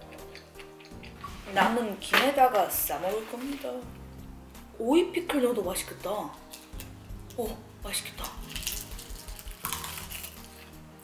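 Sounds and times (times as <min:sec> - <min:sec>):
soft background music: 0:00.0 - 0:11.0
crisp crunch of biting food: 0:08.2 - 0:10.7.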